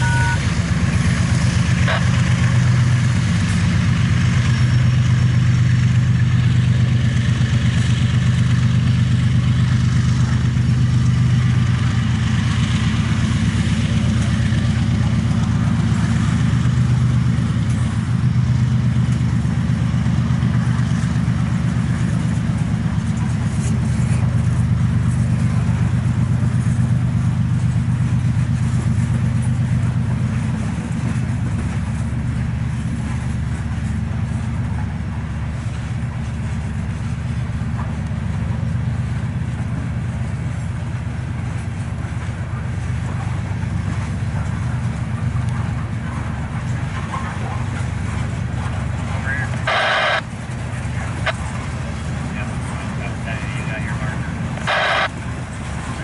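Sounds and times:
freight train wheels rumbling on rail: 0.0s - 56.0s.

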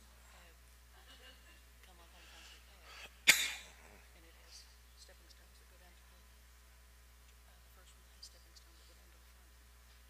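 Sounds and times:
person sneezing: 2.9s - 3.9s.

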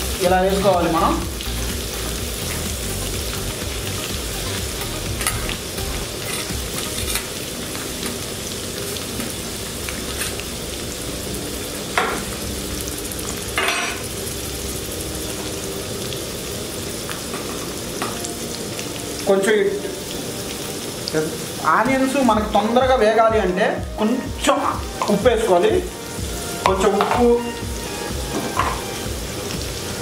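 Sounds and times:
onions sizzling in hot oil: 0.0s - 30.0s.

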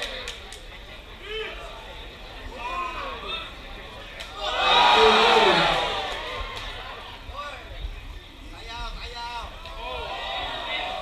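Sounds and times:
crowd cheering: 4.4s - 7.2s
people shouting: 4.5s - 6.2s.

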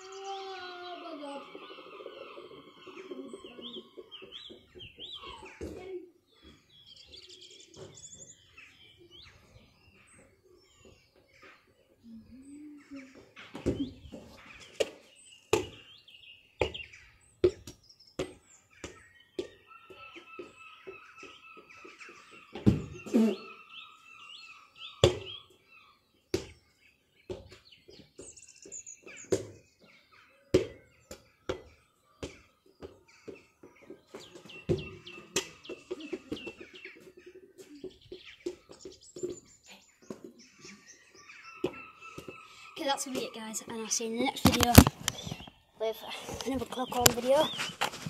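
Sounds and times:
birds chirping: 0.0s - 48.0s
football bouncing on pavement: 14.7s - 16.0s, 16.6s - 21.9s, 22.5s - 23.0s, 25.0s - 25.4s, 26.3s - 26.6s, 27.3s - 29.7s, 30.5s - 40.4s, 41.6s - 42.4s.

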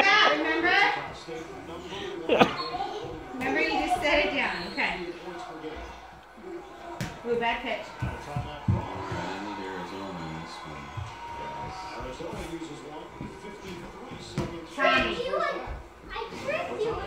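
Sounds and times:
adult voice: 0.0s - 2.6s
children chattering and calling: 0.0s - 12.9s, 14.8s - 17.0s.

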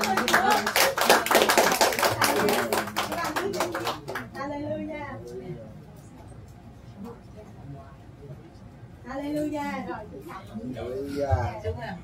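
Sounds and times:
hands clapping: 0.0s - 4.4s.

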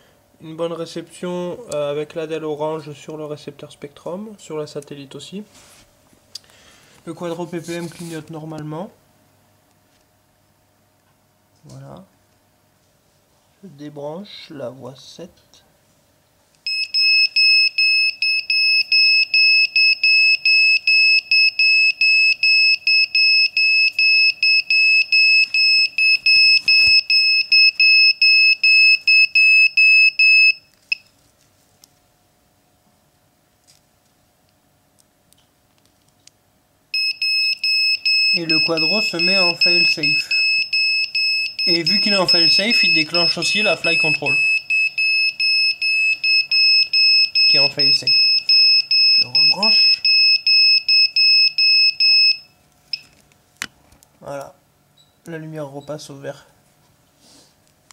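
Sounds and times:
high-pitched rapid buzzer beeps: 37.0s - 52.5s.

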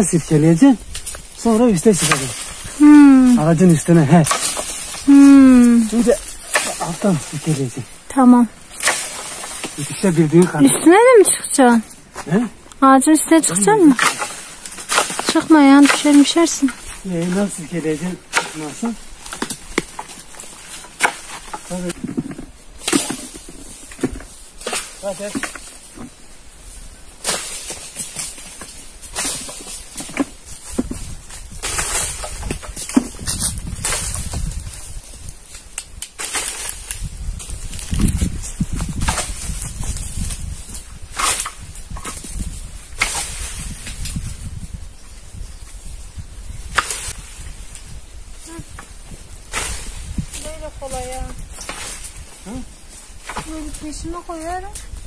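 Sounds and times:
walnuts falling on grass and leaves: 0.8s - 11.0s, 13.8s - 26.2s, 27.2s - 44.6s.

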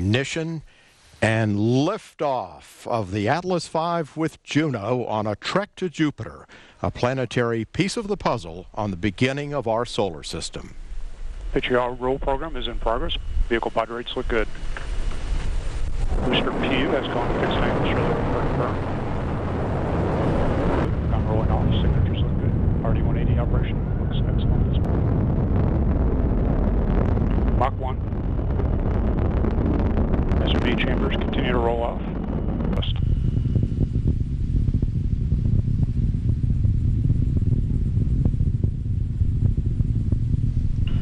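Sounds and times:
rocket engines rumbling: 6.9s - 41.0s.

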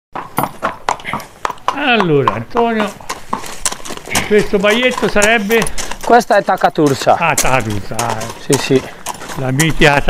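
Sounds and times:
horse hooves on brick paving: 0.2s - 10.0s
man speaking: 1.1s - 3.0s, 4.1s - 10.0s.

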